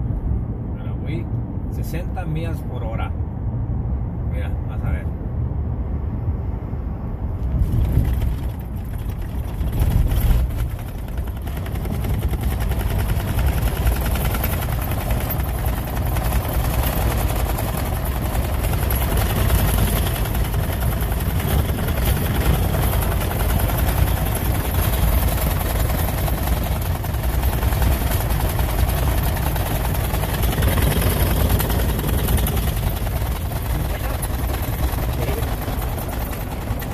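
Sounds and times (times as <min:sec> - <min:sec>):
road and engine rumble: 0:00.0 - 0:36.9.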